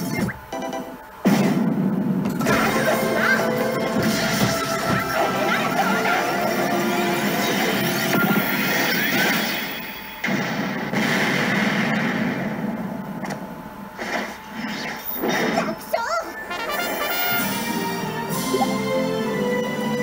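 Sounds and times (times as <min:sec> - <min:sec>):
slot machine game music: 0:02.3 - 0:10.2, 0:16.4 - 0:20.0
crashing hit sounds: 0:06.4 - 0:12.9.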